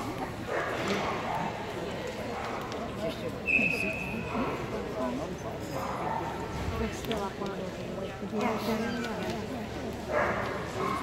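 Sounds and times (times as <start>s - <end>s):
background chatter: 0.0s - 11.0s.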